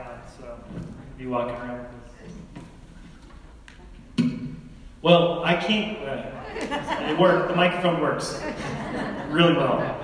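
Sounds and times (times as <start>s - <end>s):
man speaking into microphone: 0.0s - 2.4s, 5.0s - 6.4s, 7.0s - 10.0s.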